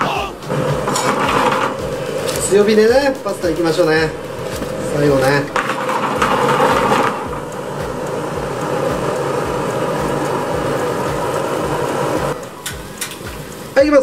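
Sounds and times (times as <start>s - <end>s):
gas burner and pan rushing: 0.0s - 14.0s.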